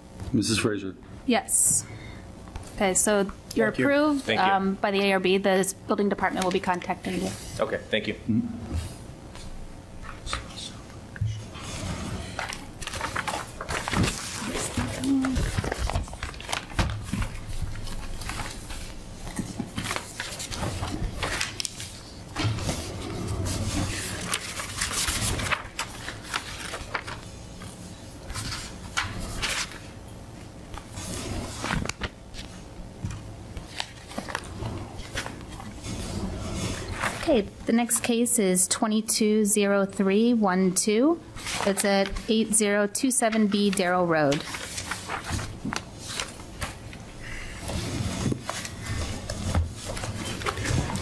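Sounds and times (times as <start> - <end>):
rustling and handling noises: 11.5 - 37.5, 41.4 - 42.5, 43.2 - 51.0
boards rustling and rubbing: 47.4 - 51.0.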